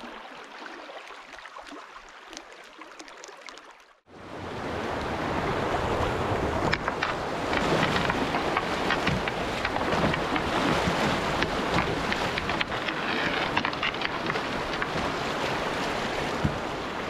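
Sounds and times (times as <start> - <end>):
whitewater rushing around canoe: 4.4 - 17.0.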